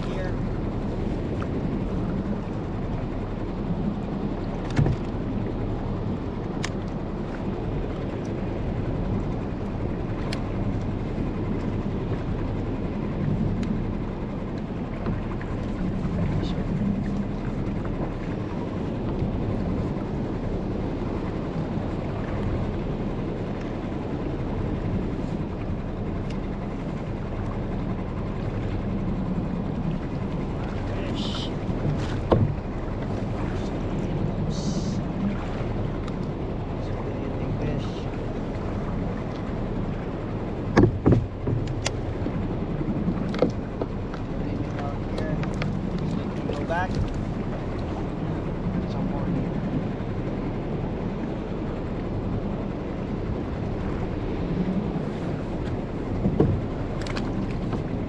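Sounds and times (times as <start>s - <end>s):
water noise: 0.0s - 58.0s
wind: 0.0s - 58.0s
sharp knocks against boat: 4.6s - 5.2s, 30.6s - 34.1s, 40.6s - 48.0s, 55.6s - 58.0s.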